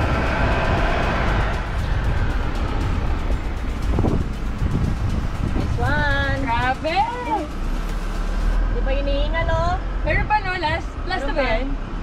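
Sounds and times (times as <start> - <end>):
wind rumble: 0.0 - 11.0
moving vehicle: 0.0 - 12.0.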